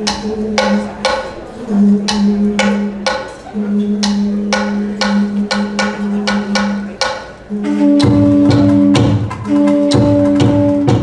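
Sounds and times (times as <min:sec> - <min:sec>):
conch shell low note: 0:00.0 - 0:11.0.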